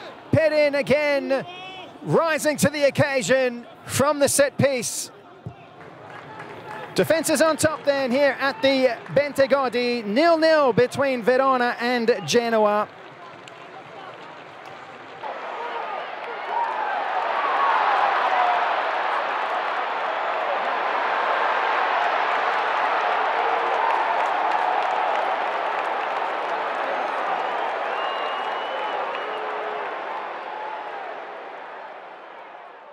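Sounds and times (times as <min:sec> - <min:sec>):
crowd cheering: 0:00.0 - 0:32.9
applause: 0:05.5 - 0:32.9.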